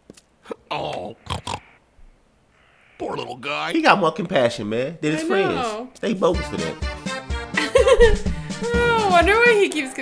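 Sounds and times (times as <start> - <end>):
cartoon pig oinks: 0.8 - 1.7.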